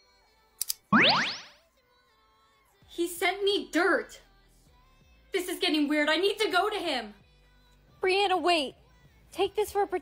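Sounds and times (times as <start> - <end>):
quick clicks: 0.6 - 0.9
tone sweeping steeply upward: 0.9 - 1.6.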